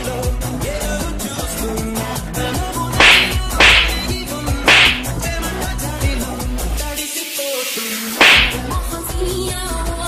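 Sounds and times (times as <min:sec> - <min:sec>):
music with fast ticking beat: 0:04.7 - 0:05.1.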